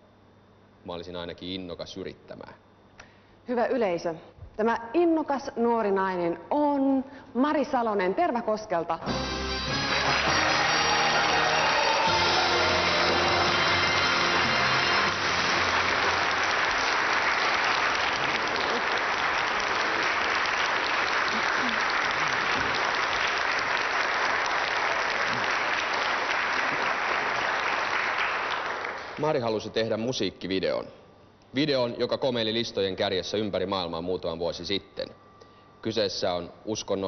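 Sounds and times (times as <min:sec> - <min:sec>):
music playing: 0:09.0 - 0:17.6
audience applauding: 0:09.1 - 0:29.5.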